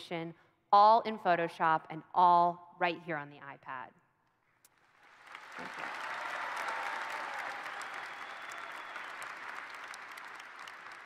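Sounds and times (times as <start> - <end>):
audience applauding: 4.8 - 11.0.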